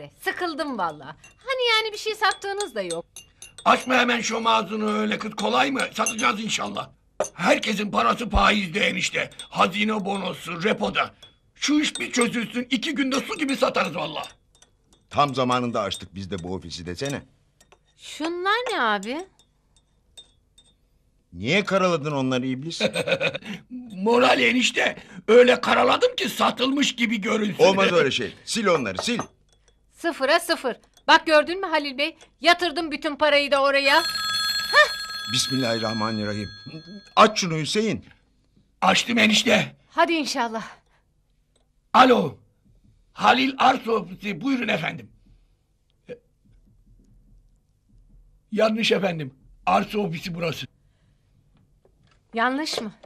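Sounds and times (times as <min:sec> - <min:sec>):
faint room hum: 0:00.0 - 0:53.0
tea glass clinking on saucer: 0:02.3 - 0:07.5, 0:13.1 - 0:18.0, 0:28.7 - 0:29.8.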